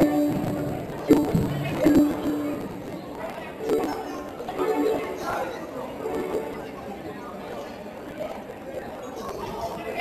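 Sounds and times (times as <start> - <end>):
indistinct voices talking: 0.0 - 7.5.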